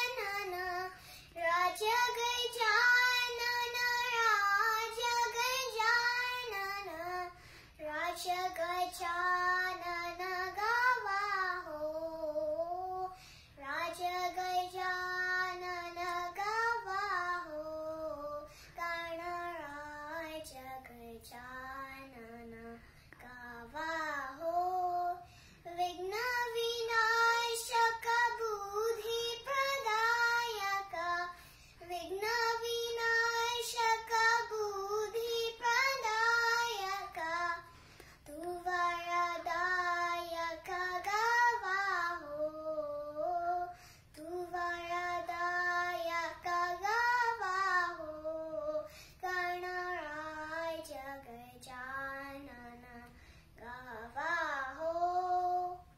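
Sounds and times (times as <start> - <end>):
girl singing classical vocal: 0.0 - 55.9.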